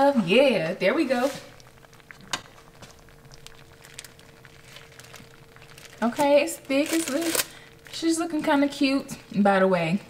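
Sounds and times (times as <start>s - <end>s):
faint steady hum: 0.0s - 10.0s
plastic liner crinkling: 1.0s - 8.8s.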